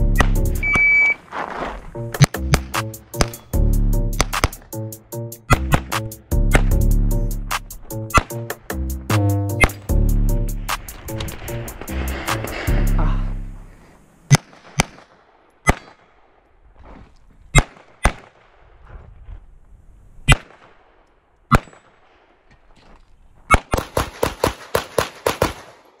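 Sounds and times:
pistol shots: 23.5 - 26.0.

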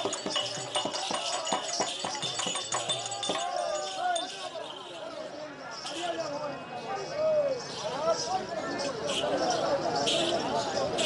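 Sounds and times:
hand drum beating: 0.0 - 3.8
bells jingling: 0.0 - 6.4.

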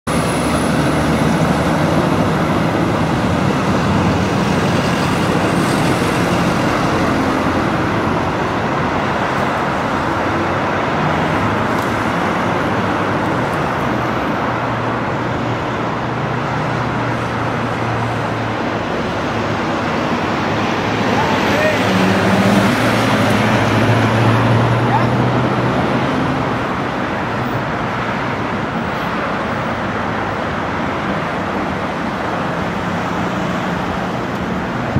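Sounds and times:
road traffic passing: 0.0 - 34.9.

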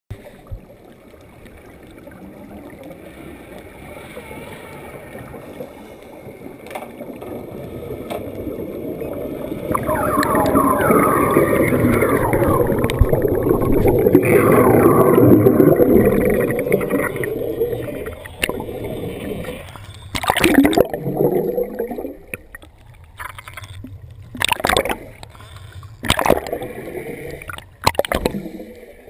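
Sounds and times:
muffled water sound: 0.1 - 29.0
underwater bubbling and gurgling: 0.1 - 29.0.

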